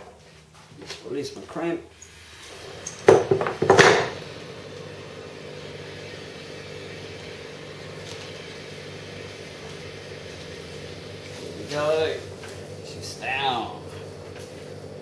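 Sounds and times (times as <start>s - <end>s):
vacuum pump humming: 2.0s - 15.0s.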